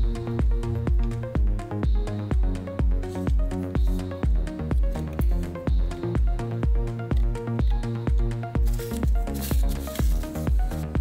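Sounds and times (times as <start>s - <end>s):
electronic music: 0.0s - 11.0s
steady kick drum beat: 0.0s - 11.0s.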